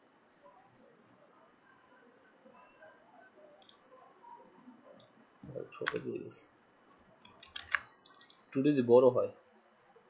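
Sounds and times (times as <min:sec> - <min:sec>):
faint room noise: 0:00.0 - 0:10.0
computer mouse clicks: 0:03.6 - 0:03.8, 0:05.0 - 0:05.2, 0:05.8 - 0:06.1, 0:07.2 - 0:08.4.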